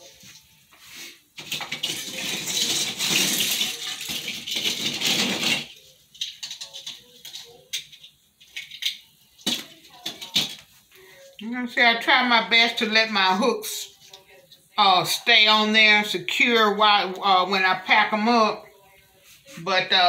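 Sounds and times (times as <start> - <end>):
christmas ornaments rattling: 1.4 - 11.4.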